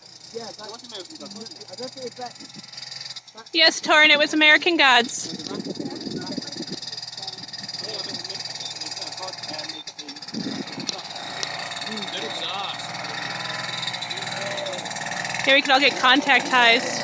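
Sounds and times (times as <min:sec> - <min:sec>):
distant snowmobile engine: 0:00.0 - 0:17.0
quiet voices murmuring: 0:03.4 - 0:17.0.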